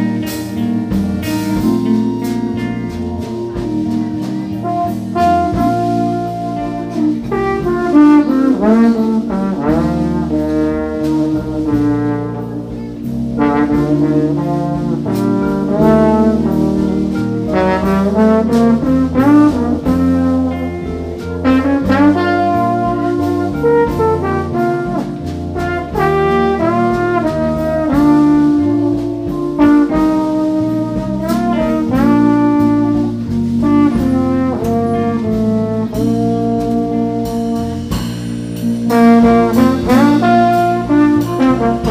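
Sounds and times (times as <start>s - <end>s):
live jazz band playing: 0.0s - 41.9s
trombone melody: 0.0s - 41.9s.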